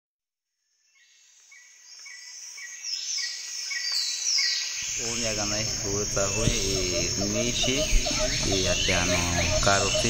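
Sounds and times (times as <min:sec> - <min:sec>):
insects chirping: 0:00.6 - 0:10.0.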